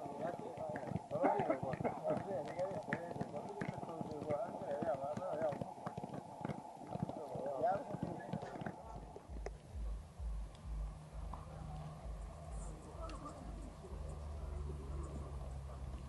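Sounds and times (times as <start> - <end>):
footballs being kicked: 0.0 - 12.2
players chattering: 0.0 - 16.0.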